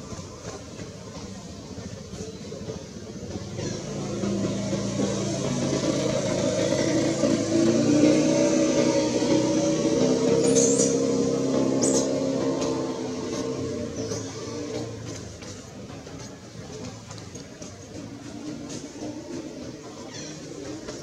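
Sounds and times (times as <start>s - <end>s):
vehicle engine passing: 3.3s - 16.9s.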